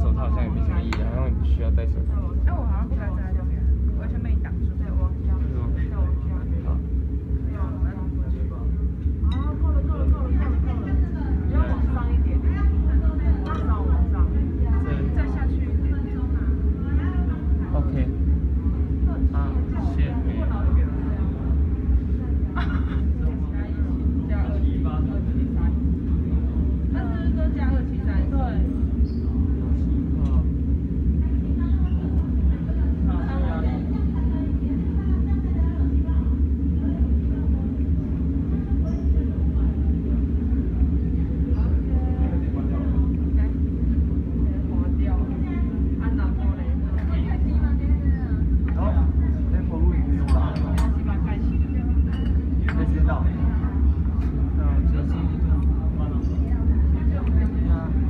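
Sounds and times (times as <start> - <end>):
low machine hum: 0.0 - 58.0.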